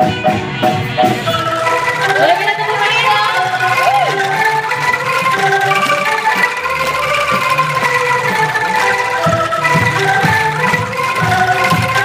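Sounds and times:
angklung ensemble with band: 0.0 - 12.0
steady drum beat: 0.0 - 12.0.

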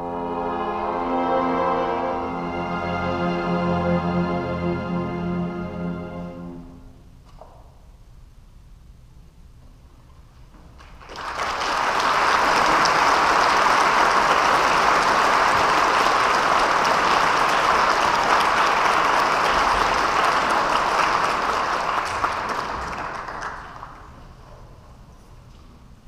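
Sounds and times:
audience applause: 10.8 - 24.4.

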